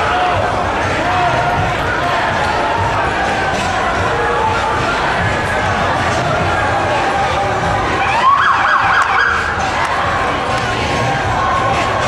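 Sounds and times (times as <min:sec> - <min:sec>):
street crowd noise: 0:00.0 - 0:12.0
siren rising and yelping: 0:08.0 - 0:09.5.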